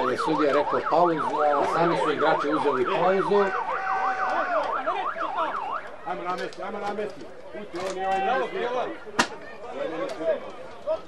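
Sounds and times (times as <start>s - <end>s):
emergency vehicle siren yelping: 0.0s - 6.5s.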